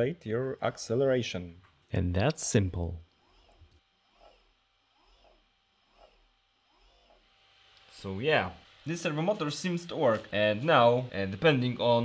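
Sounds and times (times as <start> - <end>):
servo motor whine: 3.2 - 12.0.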